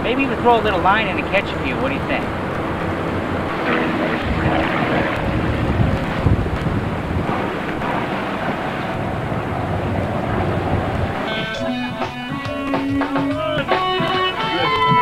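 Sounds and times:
steady low rumble: 0.0s - 12.4s
wind rushing over microphone: 0.0s - 12.4s
guitar music: 1.8s - 8.7s, 9.8s - 15.0s.

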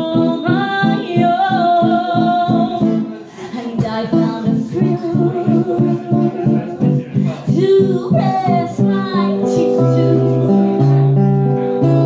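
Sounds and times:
woman singing: 0.0s - 11.2s
guitar chords: 0.0s - 12.0s.

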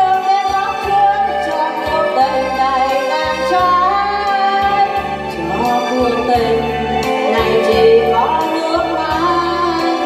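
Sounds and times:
electronic keyboard: 0.0s - 10.0s
woman singing into a microphone: 0.0s - 10.0s.

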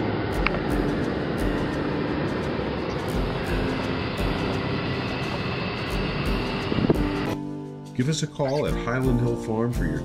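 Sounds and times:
vehicle engine and road rumble: 0.0s - 7.6s.

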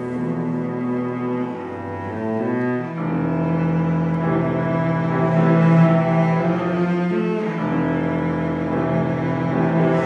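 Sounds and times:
bowed cello low notes: 0.0s - 10.0s.

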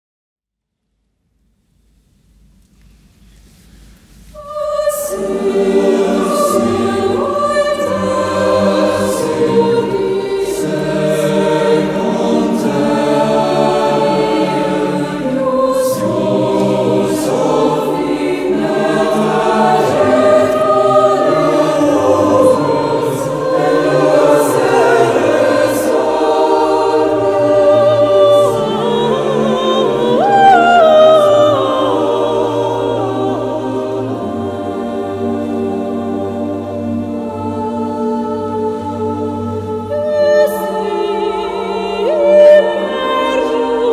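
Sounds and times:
mixed choir singing chords: 4.3s - 43.9s.

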